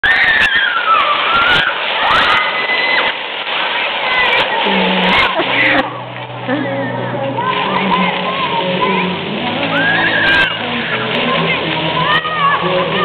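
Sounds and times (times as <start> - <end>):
children shouting: 0.0 - 6.1, 7.3 - 13.0
crowd voices: 0.0 - 13.0
fountain jets spraying: 0.0 - 13.0.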